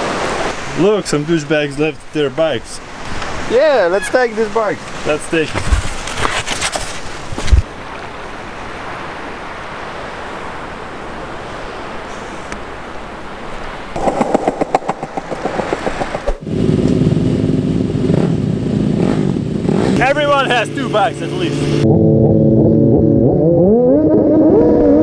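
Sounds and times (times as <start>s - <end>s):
wind rush: 8.7s - 16.9s
bicycle rolling over paving stones: 14.0s - 16.4s
low drone of held tones: 21.4s - 25.0s.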